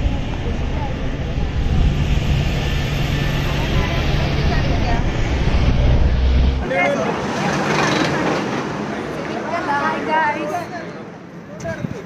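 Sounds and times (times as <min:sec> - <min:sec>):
vehicle engine humming: 0:00.0 - 0:10.5
road and wind noise: 0:00.0 - 0:12.0.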